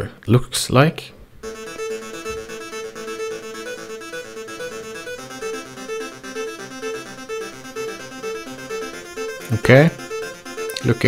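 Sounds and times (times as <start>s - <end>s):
saw-wave synthesizer melody: 1.4s - 11.0s.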